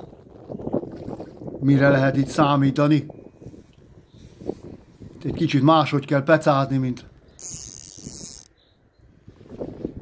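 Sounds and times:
wind buffeting microphone: 0:00.0 - 0:06.2, 0:07.0 - 0:10.0.

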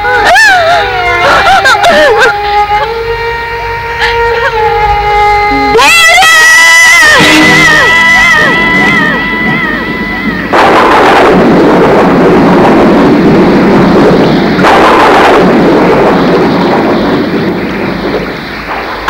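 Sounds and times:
heavy rain: 0:00.0 - 0:19.0
thunder crashes: 0:06.6 - 0:19.0.

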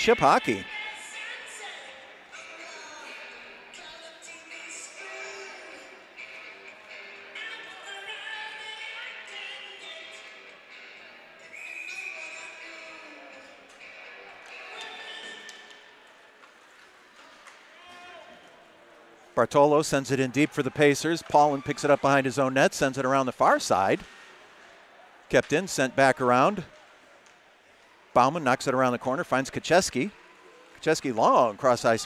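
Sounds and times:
arena music: 0:00.0 - 0:00.8
crowd voices: 0:00.0 - 0:32.0.

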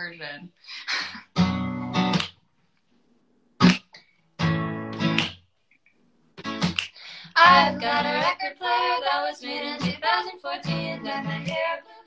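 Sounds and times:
acoustic guitar strumming: 0:01.4 - 0:02.3.

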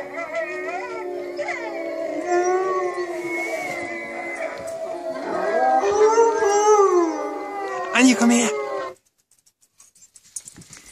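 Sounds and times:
wolves howling: 0:00.0 - 0:09.1.

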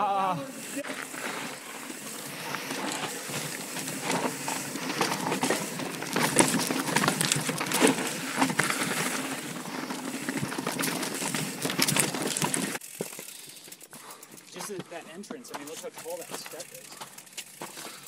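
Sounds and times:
bike rattling over bumps: 0:00.6 - 0:18.0
tyre noise on dirt and rock: 0:00.6 - 0:18.0.

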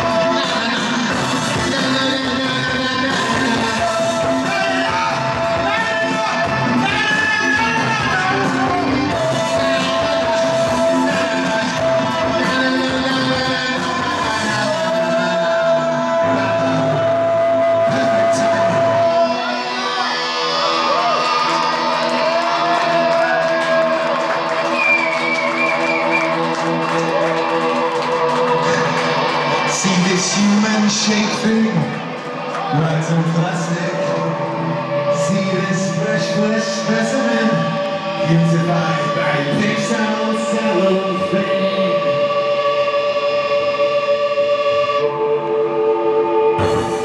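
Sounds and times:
live rock band: 0:00.0 - 0:43.8
crowd shouting and cheering: 0:00.0 - 0:47.0.

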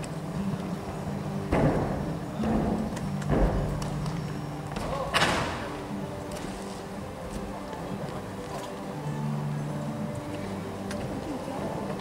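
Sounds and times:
background hall noise: 0:00.0 - 0:12.0.

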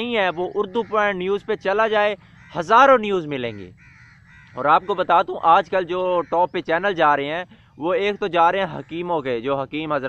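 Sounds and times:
distant crow cawing: 0:00.0 - 0:10.0.

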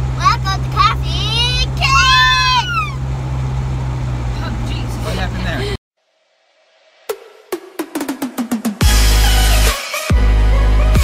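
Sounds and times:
car cabin rumble: 0:00.0 - 0:05.8
child crying out: 0:01.6 - 0:03.0.

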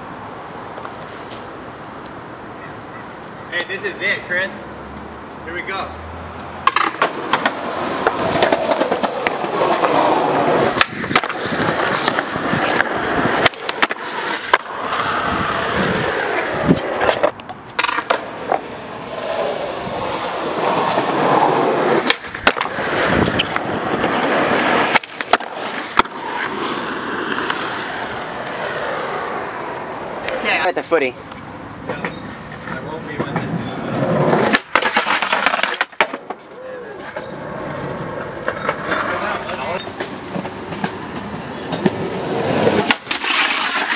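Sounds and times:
skateboard wheels rolling: 0:00.0 - 0:05.4, 0:06.3 - 0:43.9
skateboard clacking on ground: 0:00.6 - 0:03.8, 0:06.4 - 0:43.9.

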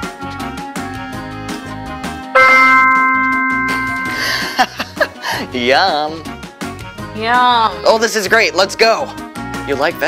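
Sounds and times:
light background music: 0:00.0 - 0:10.0
loud bell-like ding: 0:02.4 - 0:04.9.

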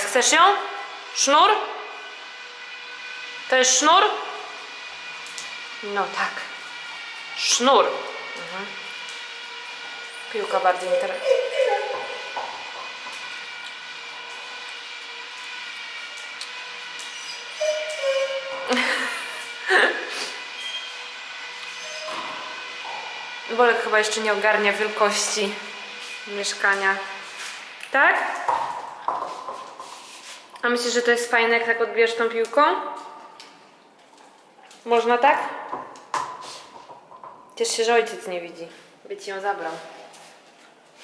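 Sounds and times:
woman's voice: 0:00.0 - 0:01.7, 0:03.5 - 0:04.3, 0:05.8 - 0:06.6, 0:07.4 - 0:08.8, 0:10.3 - 0:12.1, 0:23.5 - 0:27.2, 0:27.9 - 0:28.4, 0:30.6 - 0:33.0, 0:34.8 - 0:35.6, 0:37.6 - 0:40.0.

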